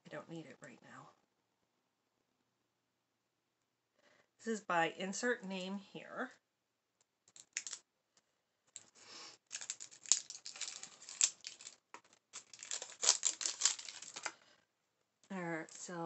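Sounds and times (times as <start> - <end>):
packaging crackling and tearing: 7.3 - 7.8, 9.5 - 14.4.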